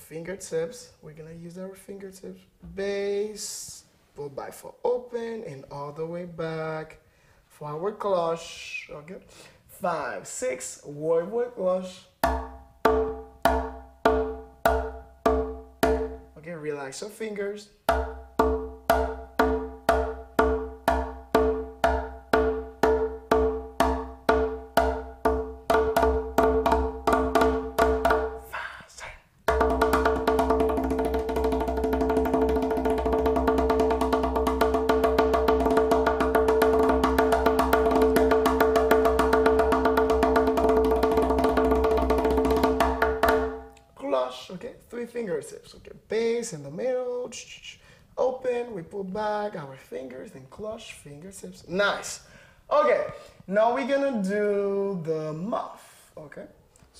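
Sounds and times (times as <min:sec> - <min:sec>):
conga drum fingertip strokes: 0:12.2 - 0:16.3, 0:17.9 - 0:28.6, 0:29.5 - 0:43.8.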